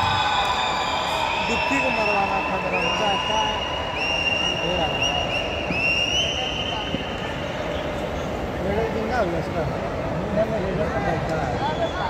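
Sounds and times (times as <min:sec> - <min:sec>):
high steady whistle: 0:00.0 - 0:07.5
murmur of voices: 0:00.0 - 0:12.0.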